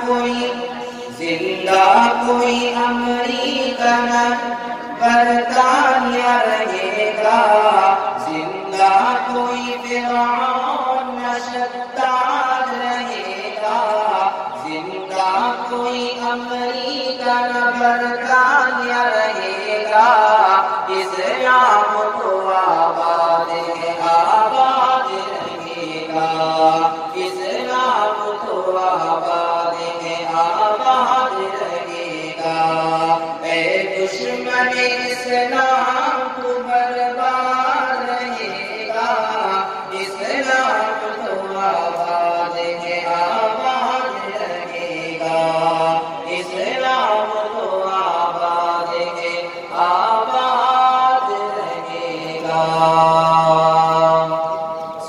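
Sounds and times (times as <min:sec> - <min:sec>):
man singing long notes: 0:00.0 - 0:55.0.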